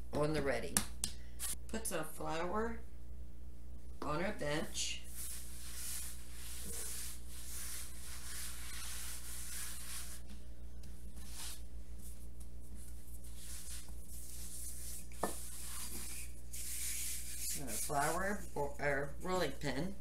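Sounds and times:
steady low hum: 0.0s - 20.0s
hands swishing flour on countertop: 5.0s - 18.4s.

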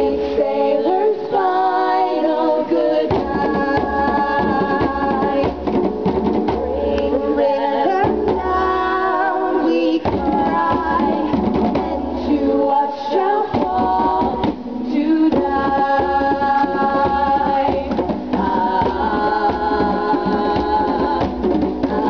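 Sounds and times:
women singing with accompaniment: 0.0s - 22.0s
hand drumming on wooden drums: 13.5s - 22.0s.

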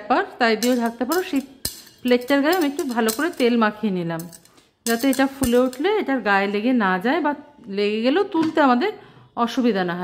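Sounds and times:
woman talking: 0.0s - 10.0s
crockery clink: 0.6s - 3.6s, 4.2s - 5.9s.

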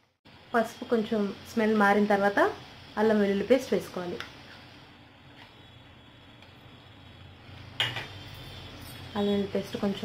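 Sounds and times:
onions frying in oil: 0.3s - 10.0s.

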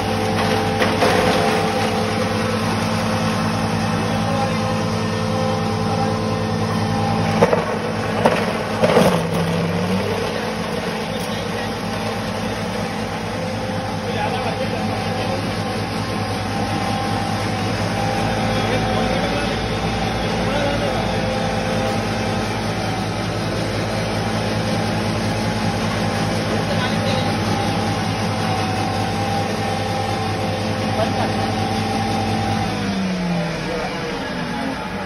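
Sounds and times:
rattling shredding noise: 0.0s - 4.0s, 7.0s - 14.7s
foam cutter motor hum: 0.0s - 35.0s.

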